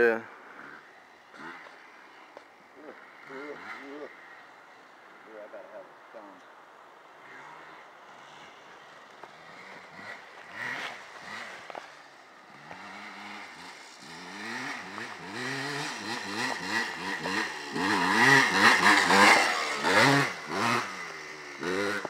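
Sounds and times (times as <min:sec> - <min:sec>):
dirt bike engine revving: 0:00.0 - 0:06.4, 0:07.1 - 0:22.0.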